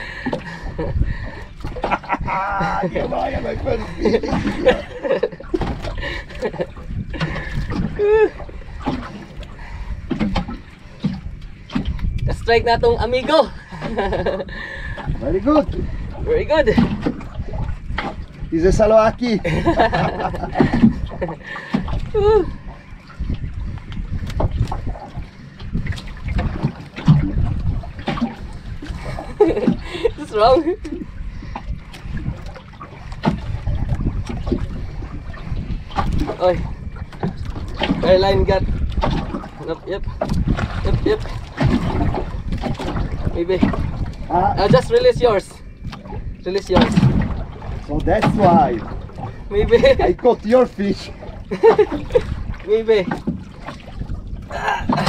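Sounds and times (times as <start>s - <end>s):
water splashing against hull: 0.0s - 55.0s
wind and sea rumble: 0.0s - 55.0s
man's laugh-like vocal sound: 1.8s - 3.1s, 3.8s - 8.4s, 13.8s - 14.6s, 19.4s - 22.6s, 29.0s - 31.1s, 51.5s - 52.4s, 54.5s - 55.0s.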